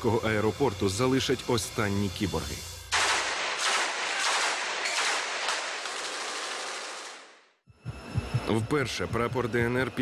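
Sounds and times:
machine-gun fire: 0:02.9 - 0:07.5.

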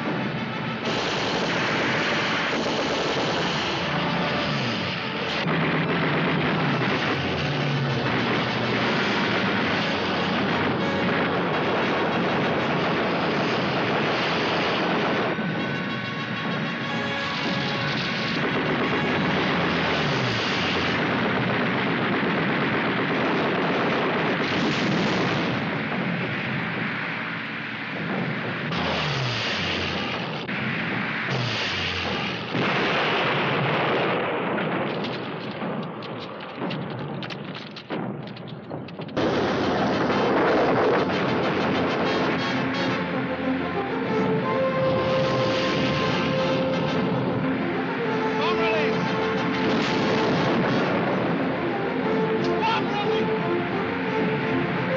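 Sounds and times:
dramatic music: 0:00.0 - 0:33.6, 0:38.7 - 0:54.9
low-flying aircraft engines drone: 0:00.0 - 0:54.9
gunfire: 0:00.6 - 0:26.8, 0:28.0 - 0:43.5, 0:45.0 - 0:53.3.

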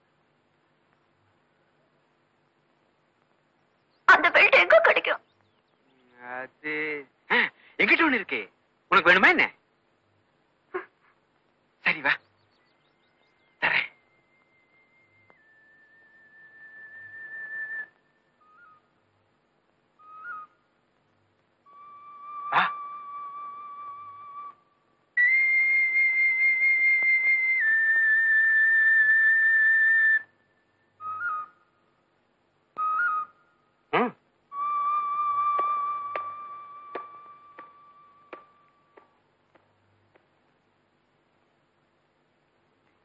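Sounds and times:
slow whistle-like melody: 0:14.0 - 0:18.9, 0:20.0 - 0:20.6, 0:21.6 - 0:31.7, 0:32.8 - 0:33.6, 0:34.5 - 0:39.2.

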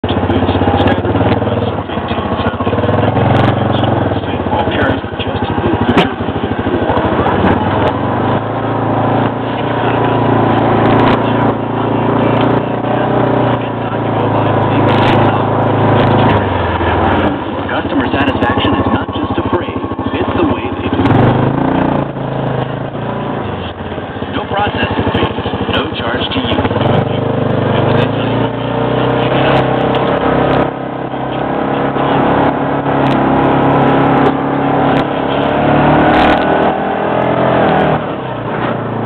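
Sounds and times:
off-road vehicle engine under load: 0:00.0 - 0:39.0.

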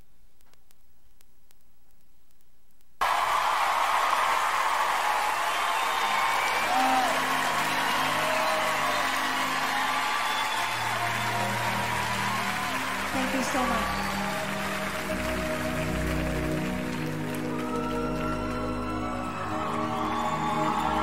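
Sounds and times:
whoops: 0:03.0 - 0:16.6, 0:17.2 - 0:21.0
audience applauding and cheering: 0:03.0 - 0:21.0.

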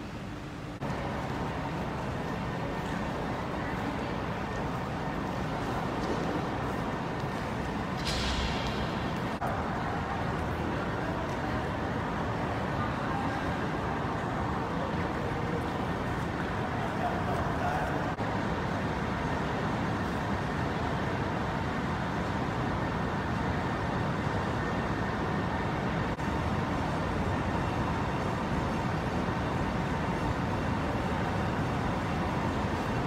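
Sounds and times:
air conditioning rushing noise: 0:00.0 - 0:33.0.

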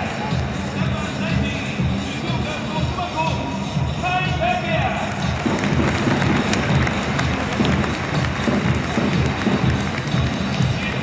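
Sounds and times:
crowd noise: 0:00.0 - 0:11.0
music over public-address system: 0:00.0 - 0:11.0.

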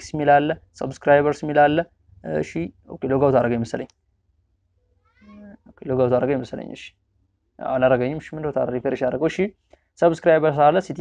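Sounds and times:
man speaking: 0:00.0 - 0:03.9, 0:05.3 - 0:06.9, 0:07.6 - 0:11.0.

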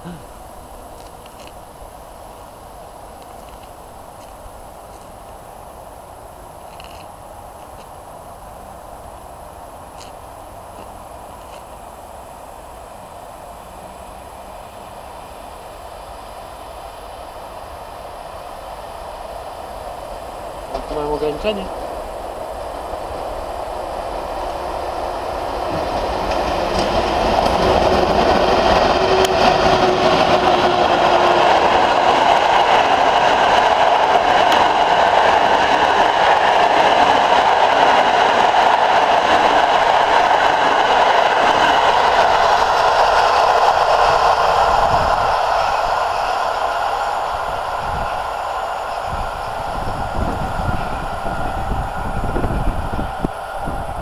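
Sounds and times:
train wheels running on rails: 0:00.0 - 0:54.0.

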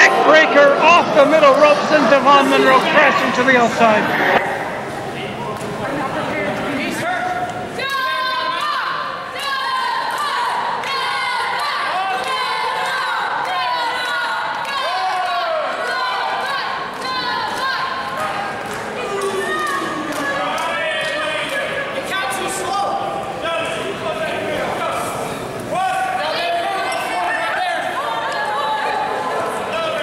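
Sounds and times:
crowd talking and calling out: 0:00.0 - 0:30.0.

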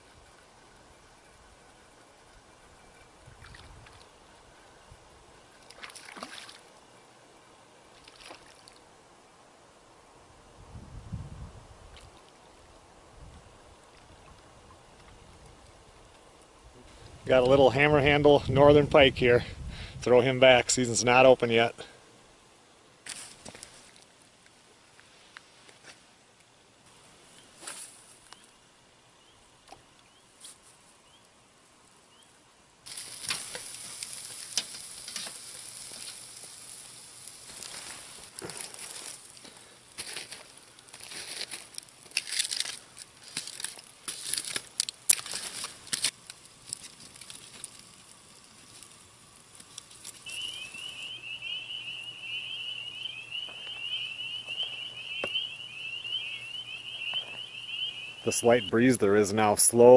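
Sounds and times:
fire crackling: 0:32.8 - 0:59.9
steak sizzling on a grill: 0:32.9 - 0:39.3
high wavering whistle: 0:50.2 - 0:59.0.

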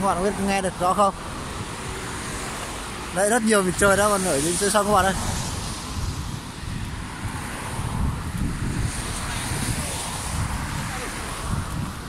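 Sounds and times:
road traffic passing: 0:00.0 - 0:12.0.

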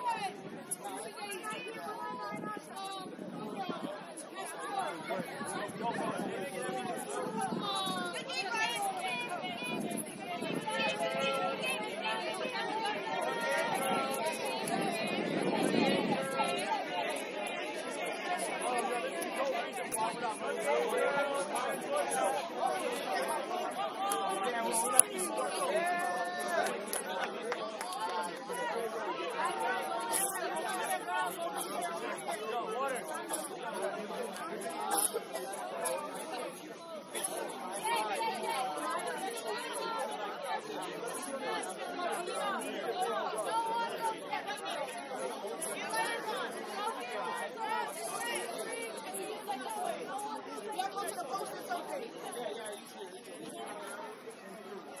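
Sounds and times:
many people chattering: 0:00.0 - 0:55.0.

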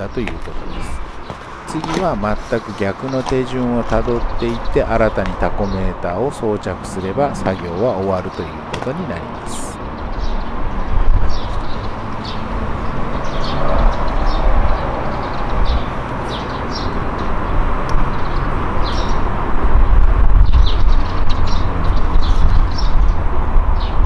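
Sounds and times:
birds chirping: 0:00.0 - 0:24.0.

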